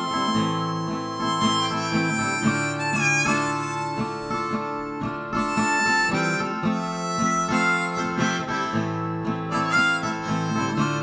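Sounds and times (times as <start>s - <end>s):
harmonica melody: 0.0s - 11.0s
strummed acoustic guitar: 0.0s - 11.0s.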